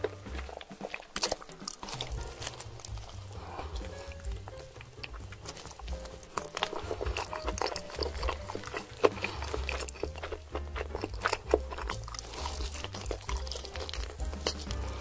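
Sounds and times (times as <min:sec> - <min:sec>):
background music: 0:00.0 - 0:15.0
lip smacking: 0:00.0 - 0:15.0
sucking at fingers: 0:00.0 - 0:15.0
wet chewing: 0:00.0 - 0:15.0.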